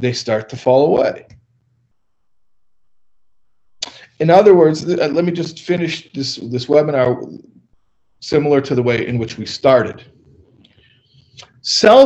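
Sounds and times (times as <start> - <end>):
man speaking: 0.0 - 1.4, 3.8 - 7.6, 8.2 - 10.1, 11.4 - 12.0
faint steady hum: 0.0 - 12.0.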